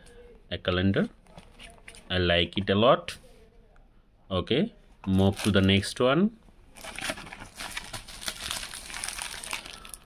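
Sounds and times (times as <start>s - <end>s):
plastic packaging crinkling: 5.2s - 5.8s, 6.7s - 10.0s.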